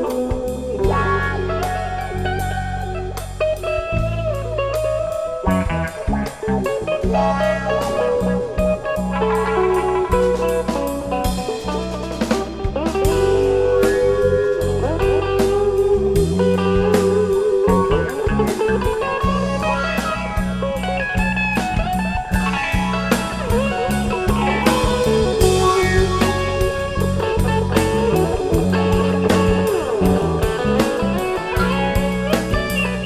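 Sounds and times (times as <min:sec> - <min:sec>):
bass guitar: 0:00.0 - 0:33.0
drum kit: 0:00.0 - 0:33.0
electric guitar lead: 0:00.0 - 0:33.0.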